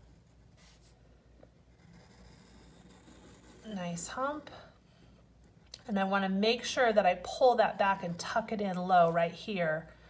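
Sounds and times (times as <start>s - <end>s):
pencil strokes on paper: 0.0s - 1.0s.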